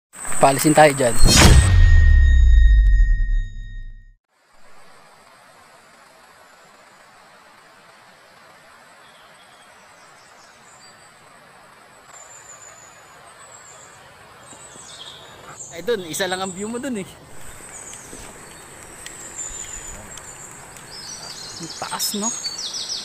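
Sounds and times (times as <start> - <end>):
deep logo intro sound: 1.2 - 4.0.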